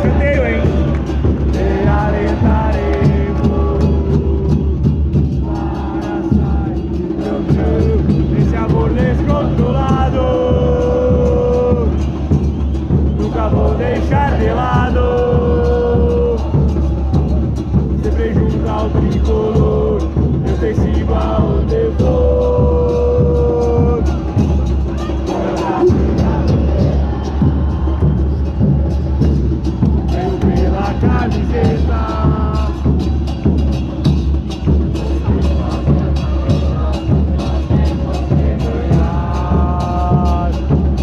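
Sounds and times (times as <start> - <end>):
drums beating: 0.0 - 41.0
football supporters chanting: 0.0 - 41.0.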